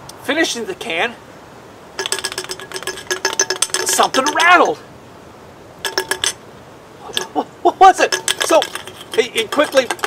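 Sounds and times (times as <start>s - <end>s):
nail rattling in a can: 2.0s - 4.8s, 5.9s - 6.4s, 8.1s - 10.0s.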